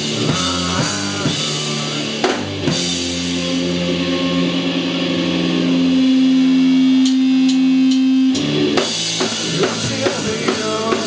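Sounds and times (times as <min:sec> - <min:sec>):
drum hits: 0:00.0 - 0:03.2, 0:08.8 - 0:11.0.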